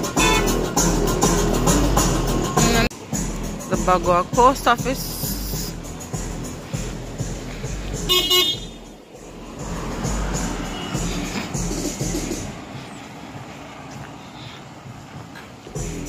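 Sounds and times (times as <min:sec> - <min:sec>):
vehicle horn toot: 0:00.0 - 0:00.6, 0:08.1 - 0:08.8, 0:10.6 - 0:11.1
street traffic: 0:00.0 - 0:16.0.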